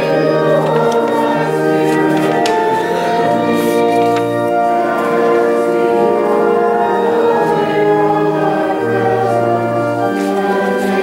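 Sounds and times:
church organ chords: 0.0s - 11.0s
congregation singing: 0.0s - 11.0s.

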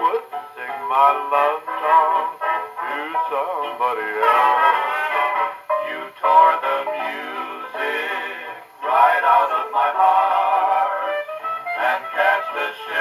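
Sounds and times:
vocal group and orchestra record: 0.0s - 13.0s.

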